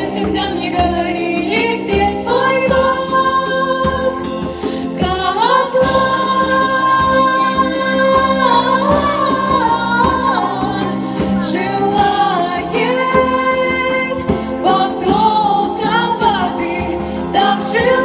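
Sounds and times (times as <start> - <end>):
women singing in unison: 0.0 - 18.0.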